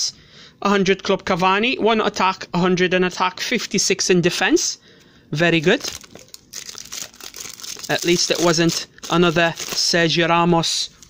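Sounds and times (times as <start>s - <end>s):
foil wrapper crinkling: 5.7s - 10.2s.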